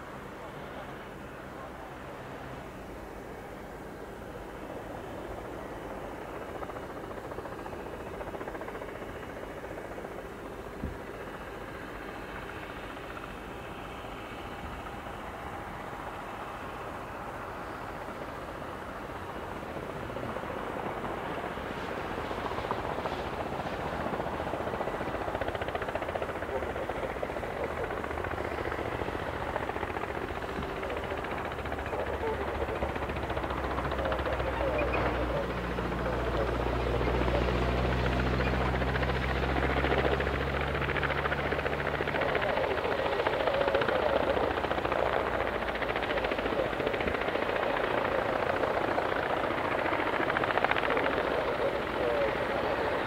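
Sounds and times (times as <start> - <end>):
helicopter hovering: 0.0 - 53.0.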